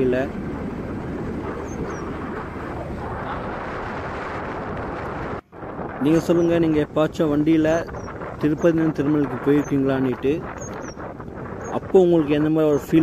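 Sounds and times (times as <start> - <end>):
rushing wind: 0.0 - 13.0.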